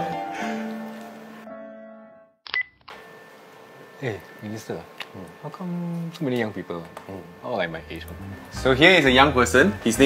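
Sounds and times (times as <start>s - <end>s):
background music: 0.0s - 2.4s, 7.7s - 10.0s.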